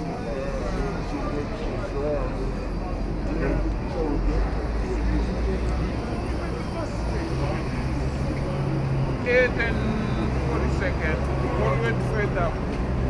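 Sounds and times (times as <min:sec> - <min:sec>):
idling traffic engines: 0:00.0 - 0:13.0
passers-by talking: 0:00.0 - 0:13.0.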